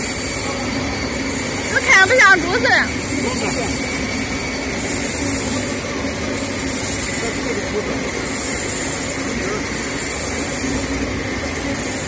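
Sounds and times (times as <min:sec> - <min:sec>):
machinery drone: 0:00.0 - 0:12.0.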